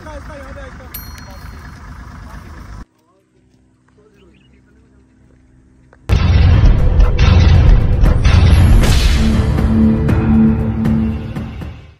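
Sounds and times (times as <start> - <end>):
car engine low: 0.0 - 2.8.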